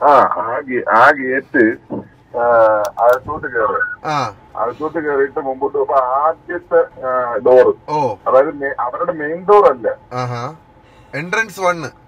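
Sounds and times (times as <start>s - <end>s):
phone call speech through speakers: 0.0s - 10.5s.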